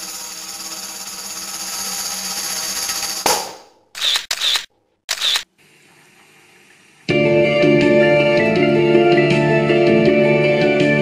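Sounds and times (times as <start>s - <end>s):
camera shutter clicks: 4.0s - 5.5s.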